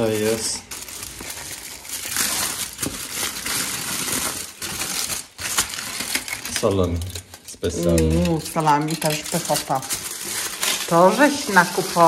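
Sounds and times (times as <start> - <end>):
aluminium foil crinkling: 0.0 - 12.0.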